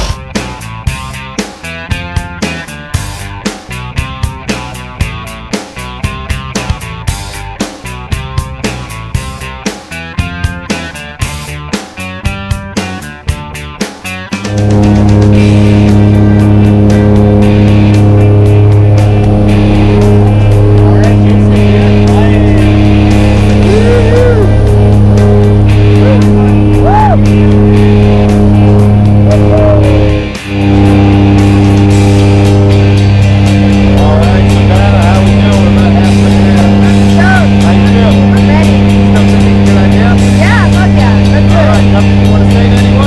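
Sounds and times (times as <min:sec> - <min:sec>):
propeller plane engine drone: 0:14.1 - 0:43.0.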